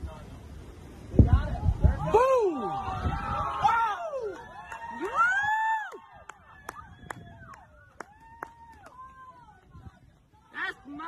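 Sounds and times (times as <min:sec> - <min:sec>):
people whooping: 0:02.0 - 0:09.7.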